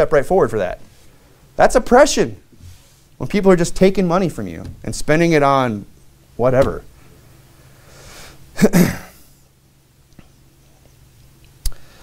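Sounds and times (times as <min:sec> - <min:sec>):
faint intake of breath: 0:07.0 - 0:08.5, 0:11.7 - 0:12.0
man coughing: 0:08.5 - 0:09.3.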